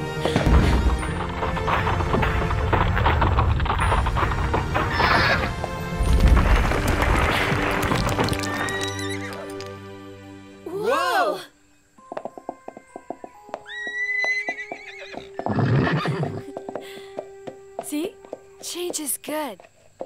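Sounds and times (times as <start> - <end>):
music: 0.0 - 19.6
cartoon boulder crumbling: 0.4 - 9.7.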